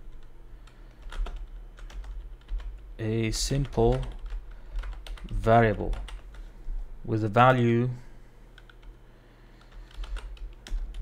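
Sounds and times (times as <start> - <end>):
typing on computer keyboard: 0.0 - 6.5, 8.5 - 9.0, 9.6 - 11.0.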